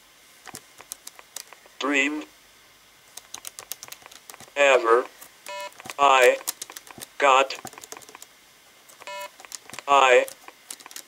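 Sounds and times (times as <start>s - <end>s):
electronic beep: 9.0s - 9.3s.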